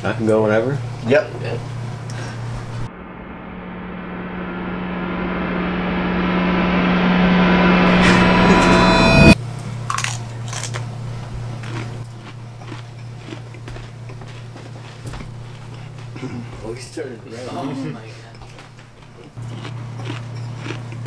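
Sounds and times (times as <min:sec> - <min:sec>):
low steady hum: 0:00.0 - 0:14.2
reverse cymbal swell: 0:02.8 - 0:09.4.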